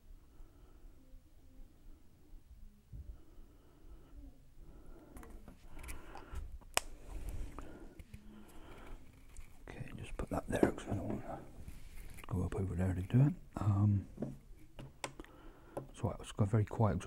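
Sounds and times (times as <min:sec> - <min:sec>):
man whispering: 0:09.6 - 0:11.6, 0:12.2 - 0:14.1.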